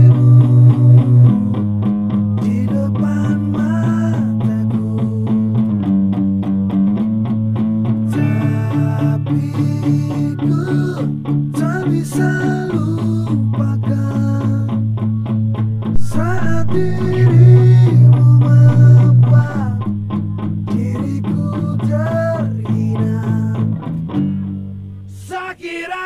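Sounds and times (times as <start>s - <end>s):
electric guitar melodic line: 0.0s - 25.1s
rock backing with bass notes: 14.8s - 20.9s.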